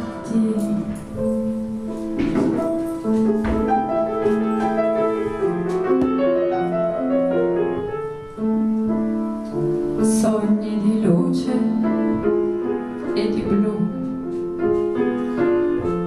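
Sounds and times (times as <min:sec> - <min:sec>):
slow piano melody: 0:00.0 - 0:16.0.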